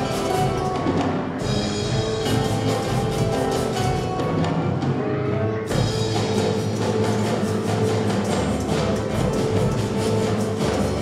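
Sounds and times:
orchestra playing: 0:00.0 - 0:11.0.

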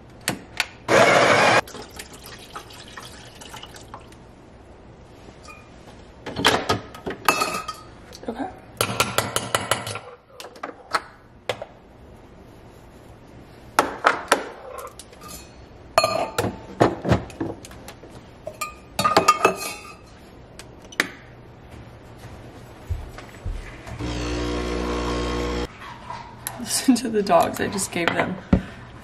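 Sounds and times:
espresso machine pump humming: 0:24.0 - 0:25.7.

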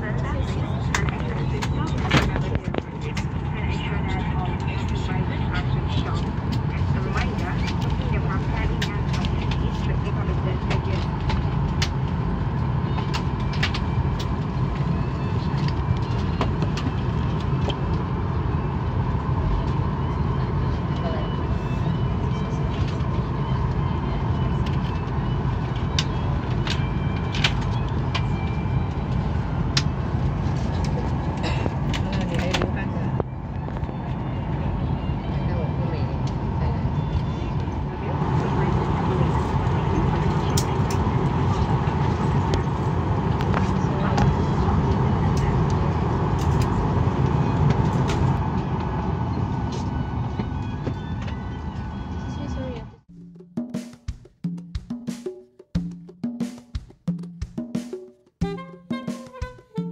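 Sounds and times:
air supply rumbling hum: 0:00.0 - 0:53.1.

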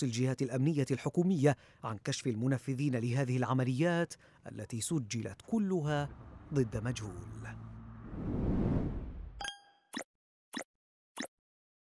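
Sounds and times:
street sound: 0:04.7 - 0:09.5.

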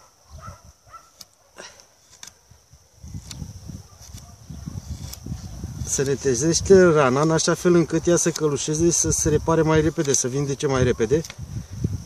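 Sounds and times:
pruning knife scraping wood: 0:00.9 - 0:11.8.

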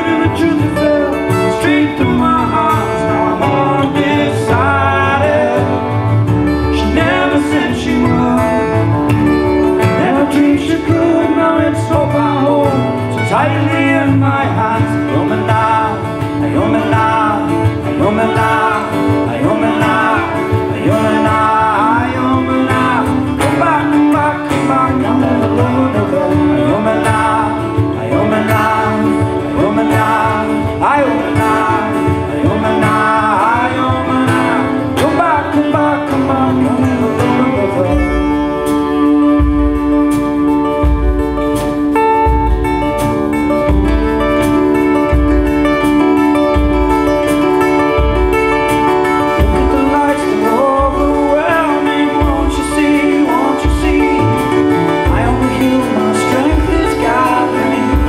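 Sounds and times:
acoustic guitars: 0:00.0 - 0:58.0
drum kit: 0:00.0 - 0:58.0.

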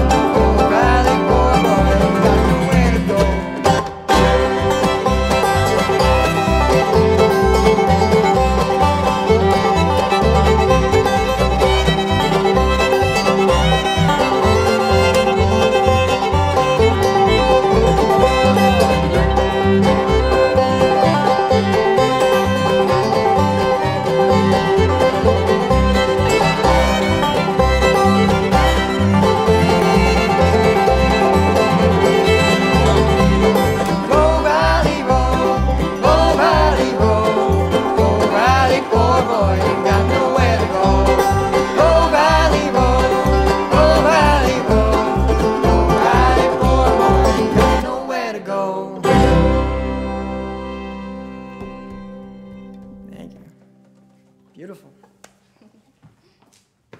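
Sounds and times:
upright bass beat: 0:00.0 - 0:47.8
sliding melody line: 0:00.0 - 0:53.3
fiddle: 0:00.0 - 0:54.0
banjo: 0:00.0 - 0:54.2
bluegrass string band playing: 0:00.0 - 0:54.4.

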